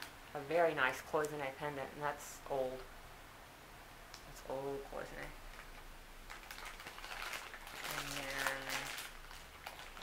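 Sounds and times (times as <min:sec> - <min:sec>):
plastic bag crinkling: 0:05.4 - 0:10.0.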